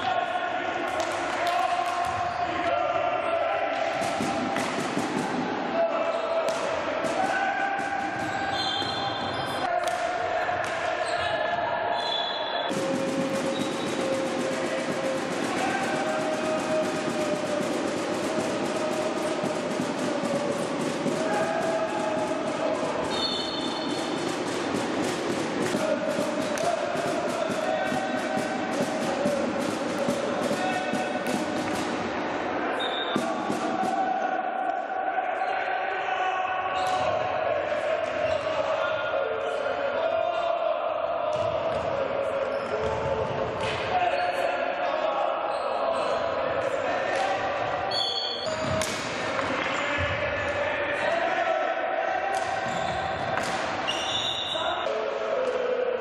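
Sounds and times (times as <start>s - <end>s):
crowd chanting: 0.0s - 56.0s
hockey sticks and ball knocking: 12.8s - 32.1s.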